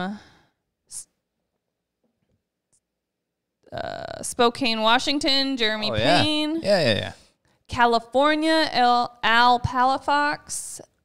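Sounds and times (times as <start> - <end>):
person humming um: 5.9 - 7.1.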